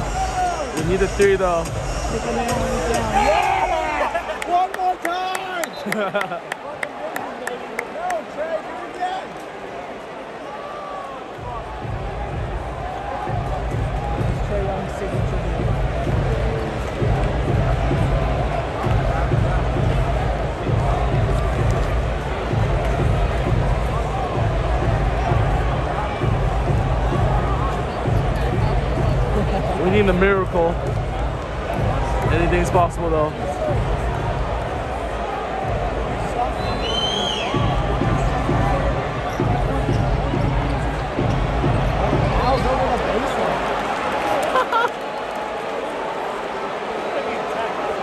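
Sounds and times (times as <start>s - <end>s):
music with heavy bass beat: 0.0s - 3.5s, 11.5s - 33.1s, 37.5s - 42.5s
arena crowd noise: 0.0s - 48.0s.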